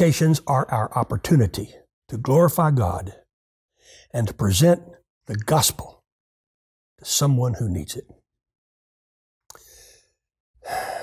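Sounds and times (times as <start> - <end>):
man breathing in: 3.7 - 4.1, 9.5 - 11.0.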